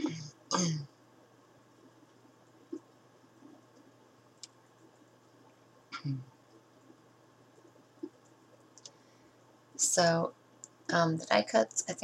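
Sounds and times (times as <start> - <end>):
woman clearing her throat: 0.0 - 0.9.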